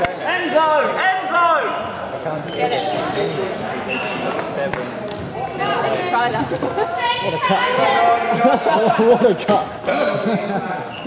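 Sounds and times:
voices talking indistinctly: 0.0 - 11.0.

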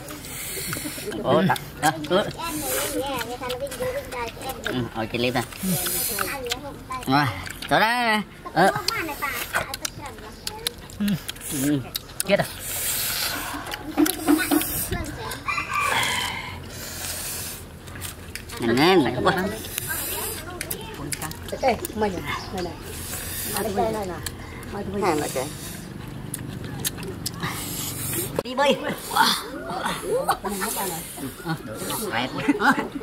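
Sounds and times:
chewing: 0.0 - 7.8, 8.4 - 32.5
people talking: 0.0 - 7.9, 14.0 - 15.6, 18.5 - 25.9, 26.5 - 33.0
mouth clicks: 0.1 - 7.8, 8.7 - 18.8, 19.5 - 28.4
man blowing hissing breath: 12.6 - 14.9, 15.9 - 17.7, 23.0 - 23.6.

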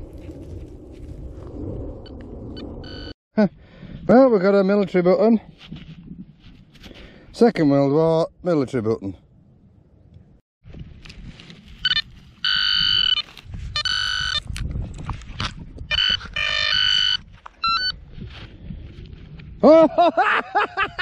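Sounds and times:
metal detector beeps: 2.6 - 3.1, 11.8 - 14.5, 15.9 - 18.0
man laughing: 19.6 - 21.0.

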